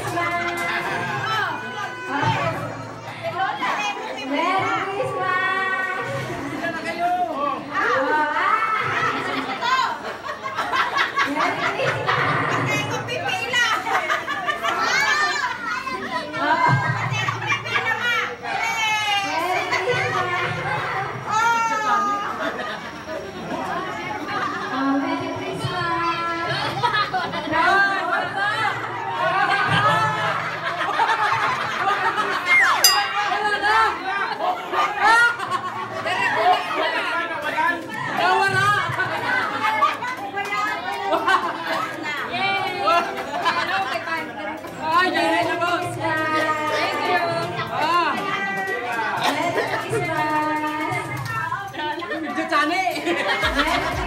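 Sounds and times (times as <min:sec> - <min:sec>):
children shouting: 0:00.0 - 0:04.1, 0:21.2 - 0:22.8
adults talking: 0:00.0 - 0:54.0
overlapping chatter: 0:00.0 - 0:54.0.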